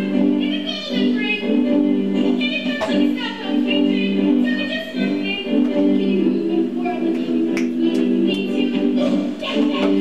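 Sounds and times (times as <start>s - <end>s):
sharp finger snaps: 7.5s - 8.4s.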